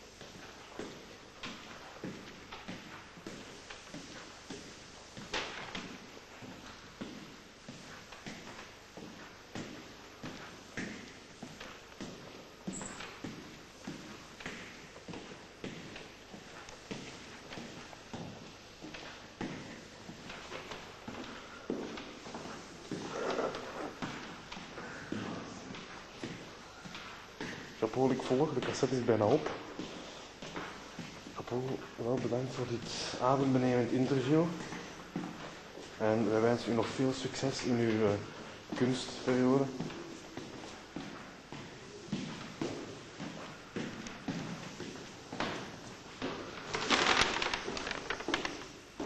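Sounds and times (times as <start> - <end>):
footsteps on tiled floor: 0.0 - 49.0.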